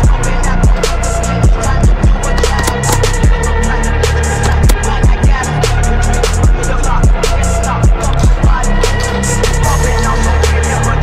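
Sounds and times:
electronic music with heavy beat: 0.0s - 11.0s.

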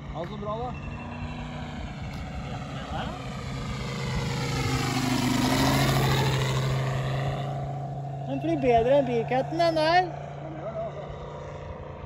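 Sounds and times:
model plane engine and propeller: 0.0s - 12.0s.

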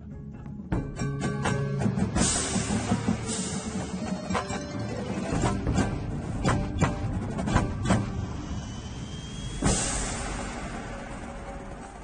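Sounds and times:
sharp percussion hits: 1.6s - 12.0s
loud percussion hit: 2.2s - 12.0s.

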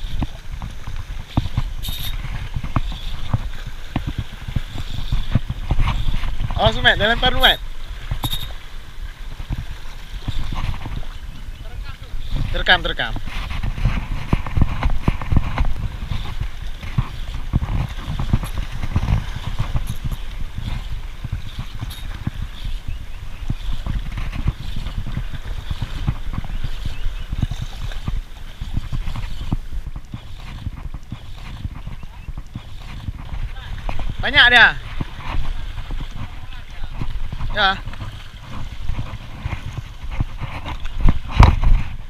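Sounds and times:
fishing reel clicking: 1.3s - 2.2s, 8.2s - 8.6s.

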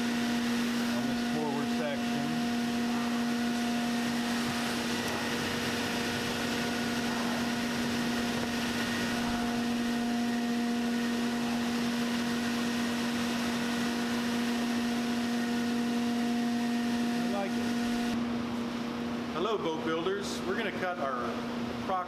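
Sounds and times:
electric motor hum: 0.0s - 18.3s.

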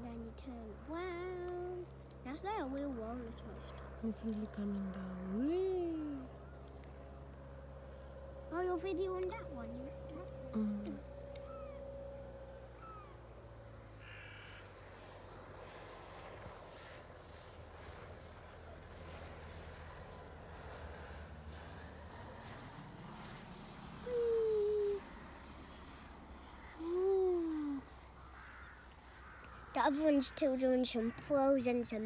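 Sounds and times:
faint outdoor background: 0.0s - 32.0s
drawn-out bird calls: 9.3s - 13.4s, 14.0s - 14.8s, 24.1s - 32.0s.

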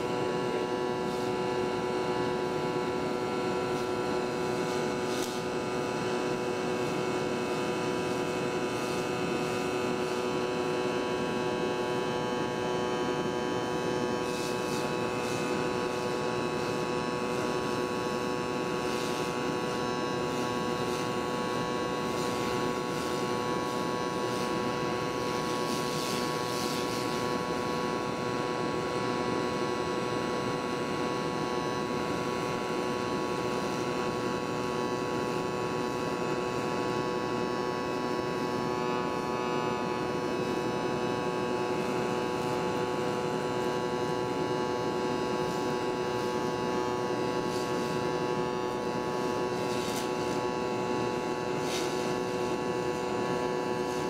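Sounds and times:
welding arc buzzing: 0.0s - 54.0s.

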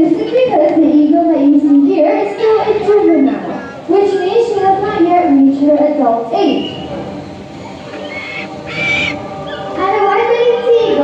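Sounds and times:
sea eagle calling: 7.6s - 9.8s.

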